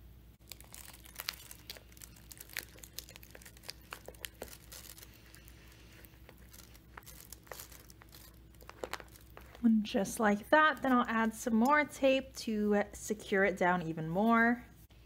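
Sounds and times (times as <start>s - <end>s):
plastic film and mesh crinkling: 0.4s - 12.7s.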